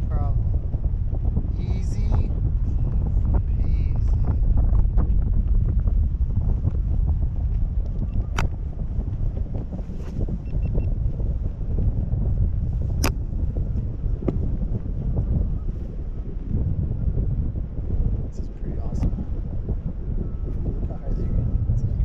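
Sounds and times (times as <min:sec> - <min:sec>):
wind buffeting microphone: 0:00.0 - 0:22.0
sharp clicks: 0:07.9 - 0:08.6.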